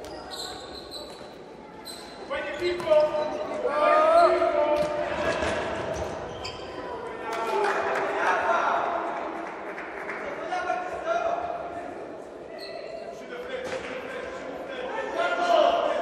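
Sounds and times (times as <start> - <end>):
ball struck and bouncing on court: 4.7 - 6.2.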